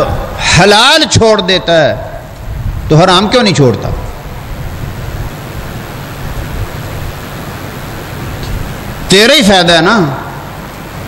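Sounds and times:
even hiss: 0:00.0 - 0:11.0.

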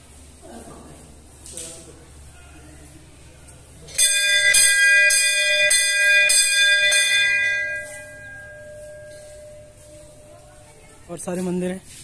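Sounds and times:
brass bell ringing: 0:03.9 - 0:10.9.

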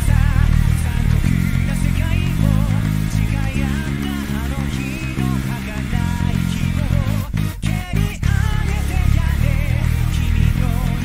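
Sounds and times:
band playing wavering melody: 0:00.0 - 0:11.0
electric bass repeated low notes: 0:00.0 - 0:11.0.

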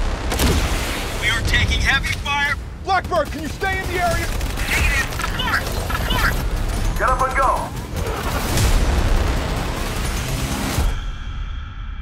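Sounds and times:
explosion and fire rumble: 0:00.0 - 0:05.4, 0:06.0 - 0:11.5
trailer music: 0:00.0 - 0:12.0.

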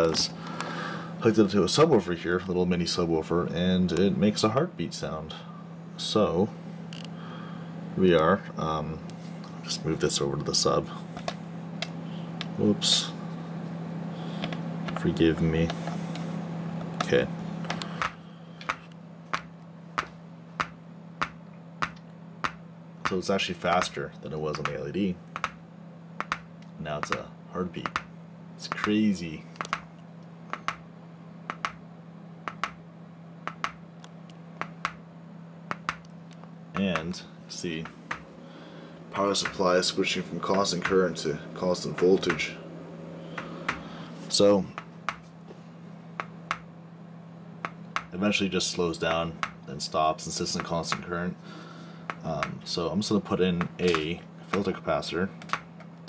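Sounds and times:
faint steady hum: 0:00.0 - 0:56.0
speaker cone clicking: 0:17.7 - 0:25.6, 0:26.2 - 0:29.0, 0:29.6 - 0:29.9, 0:30.5 - 0:30.8, 0:31.5 - 0:31.8, 0:32.4 - 0:32.8, 0:33.4 - 0:35.0, 0:35.7 - 0:37.2.

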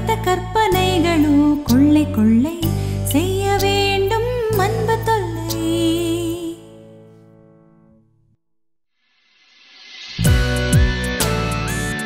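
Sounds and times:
woman singing with vibrato: 0:00.0 - 0:06.7
soft backing music: 0:00.0 - 0:07.2.

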